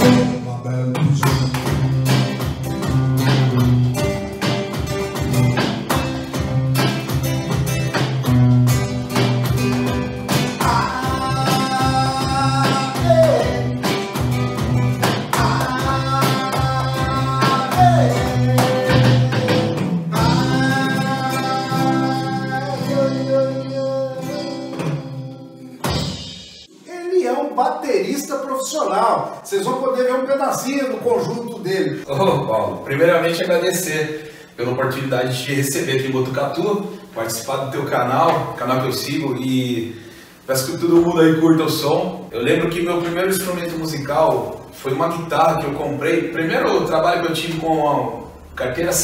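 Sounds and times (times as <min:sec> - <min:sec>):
classical guitar strummed: 0:00.0 - 0:00.5, 0:01.2 - 0:26.4
man singing: 0:00.0 - 0:01.8, 0:10.5 - 0:14.0, 0:15.0 - 0:25.8
electronic drum beat: 0:01.0 - 0:21.3.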